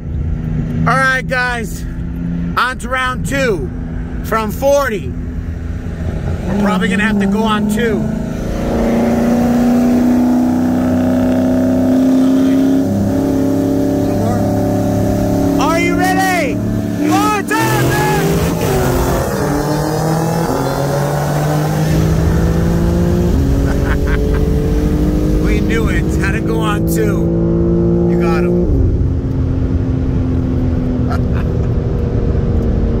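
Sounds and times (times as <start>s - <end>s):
car engine revving at full throttle: 0.0s - 33.0s
person exclaiming: 15.6s - 18.9s.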